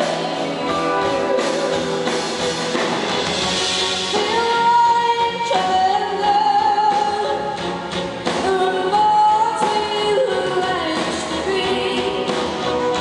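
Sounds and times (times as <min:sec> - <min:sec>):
person singing long notes: 0:00.0 - 0:02.5
rock band playing: 0:00.0 - 0:13.0
string orchestra: 0:00.0 - 0:13.0.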